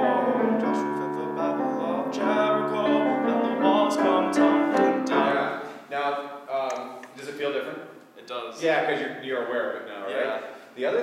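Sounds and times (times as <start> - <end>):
young man singing: 0.0 - 5.7
piano accompaniment: 0.0 - 5.8.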